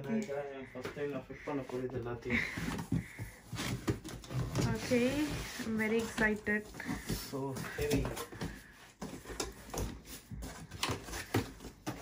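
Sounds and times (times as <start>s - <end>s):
cardboard scraping and rustling: 1.5s - 12.0s.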